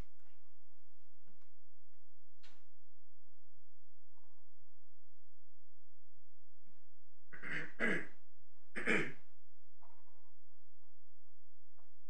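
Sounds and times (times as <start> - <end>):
steady low hum: 0.0 - 12.0
person clearing throat: 7.4 - 8.2, 8.8 - 9.2.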